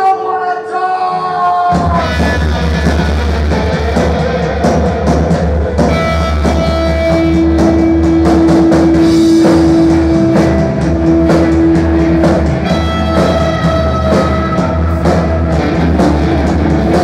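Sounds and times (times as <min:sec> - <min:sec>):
live rock band playing: 0:01.4 - 0:17.0
drum beat: 0:01.7 - 0:17.0.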